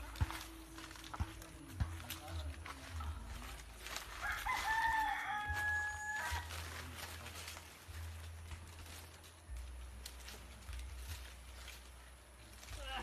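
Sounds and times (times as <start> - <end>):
rooster crowing: 4.1 - 6.7.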